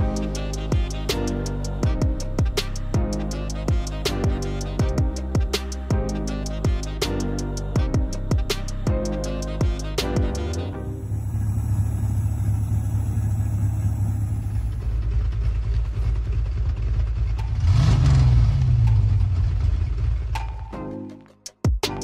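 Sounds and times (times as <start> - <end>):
music: 0.0 - 11.2, 20.3 - 22.0
car engine idling and revving: 0.0 - 20.8.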